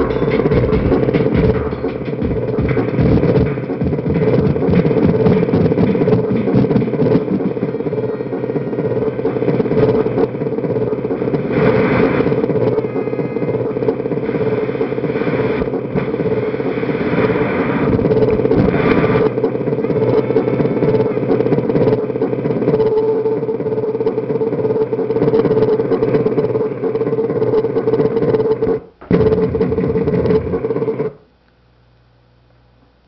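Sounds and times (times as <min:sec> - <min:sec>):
distorted electronic drum pad noise: 0:00.0 - 0:31.2.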